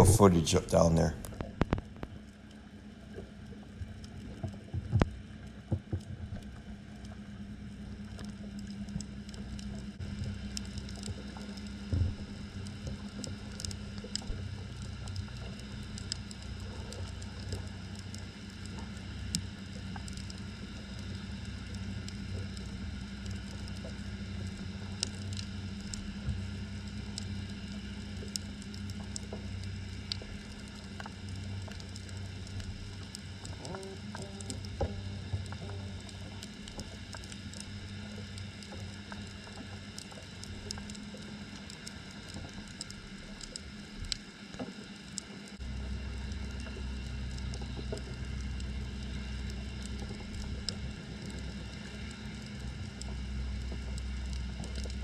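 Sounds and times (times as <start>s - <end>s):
faint clicks and crackles: 0.0s - 55.0s
underwater low hum: 0.0s - 55.0s.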